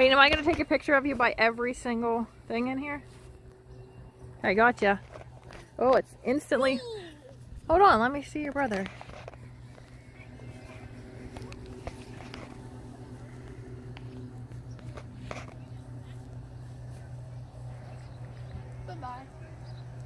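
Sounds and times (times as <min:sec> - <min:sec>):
steady low hum: 0:00.0 - 0:20.0
faint indistinct voices: 0:08.7 - 0:14.2.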